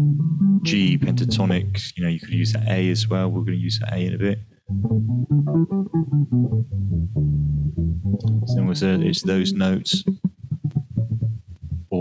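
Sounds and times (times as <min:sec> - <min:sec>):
electric bass guitar notes: 0:00.0 - 0:12.0.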